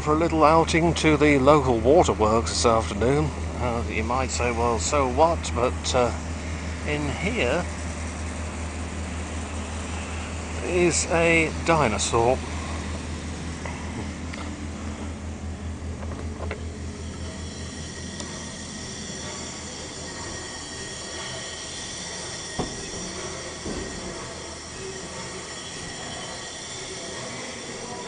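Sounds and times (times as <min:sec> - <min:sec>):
engine knocks: 0:00.0 - 0:18.5, 0:22.5 - 0:25.4
pumping engine rumbling: 0:00.0 - 0:28.0.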